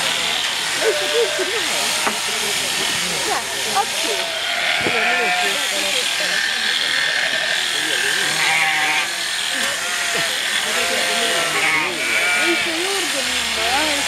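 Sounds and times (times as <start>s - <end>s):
sheep bleating: 0.0s - 2.6s, 3.4s - 14.0s
electric sheep shears buzzing: 0.0s - 14.0s
people talking: 0.8s - 14.0s.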